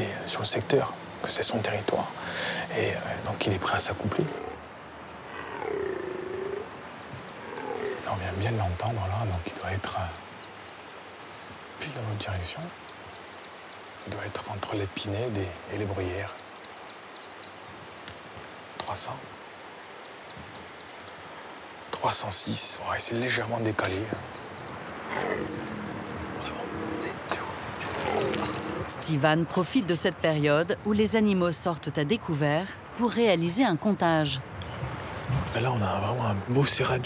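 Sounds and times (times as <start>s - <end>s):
deer stag bellowing: 24.9s - 28.9s.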